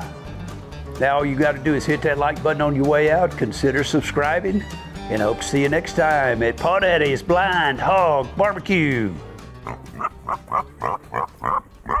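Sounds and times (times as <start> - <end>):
pig grunting: 9.6 - 12.0.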